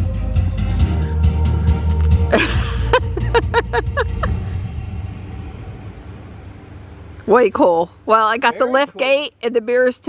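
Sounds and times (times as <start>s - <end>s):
heavy bass music with beat: 0.0s - 4.7s.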